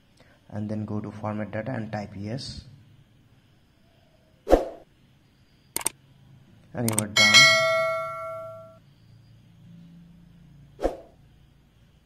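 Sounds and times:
bell-like ding: 0:07.2 - 0:08.8.

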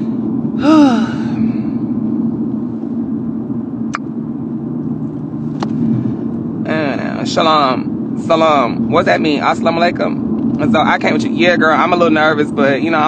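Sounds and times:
car cabin rumble: 0:00.0 - 0:13.0
wordless vocal sigh: 0:00.6 - 0:01.7.

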